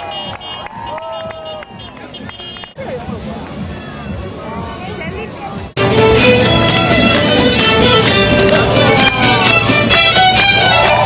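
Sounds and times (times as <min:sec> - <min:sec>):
crowd voices and shouts: 0:00.0 - 0:11.0
parade music: 0:00.0 - 0:11.0.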